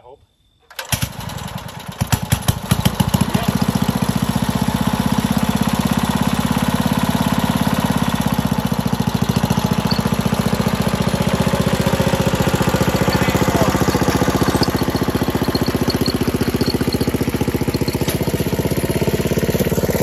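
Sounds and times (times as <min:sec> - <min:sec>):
small engine starting and idling: 0:00.6 - 0:20.0.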